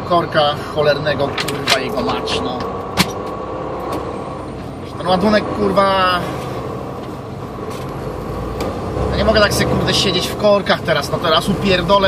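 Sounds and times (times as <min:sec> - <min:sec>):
diesel truck engine drone: 0:00.0 - 0:12.0.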